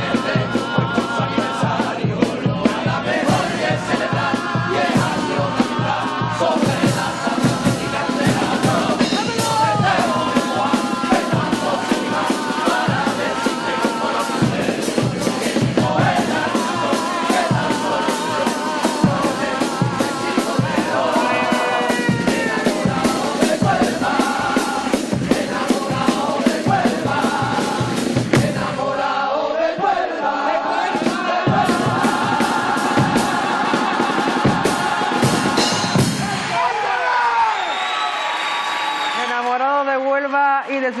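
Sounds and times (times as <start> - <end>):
steady drum beat: 0.0 - 29.2, 29.8 - 37.0
chorus singing in harmony: 0.0 - 37.7
crowd cheering: 2.8 - 27.8, 28.5 - 41.0.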